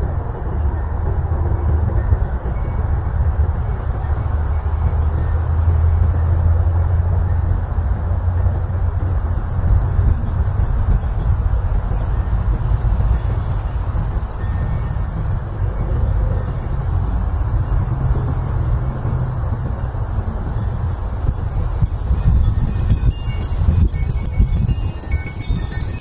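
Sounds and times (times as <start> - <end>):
wind rumbling on microphone: 0.0 - 26.0
wind chime tinkling: 7.2 - 17.2, 19.6 - 26.0.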